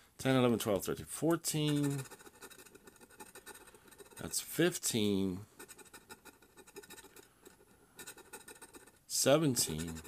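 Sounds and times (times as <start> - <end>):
scratching lottery ticket: 1.5 - 10.0.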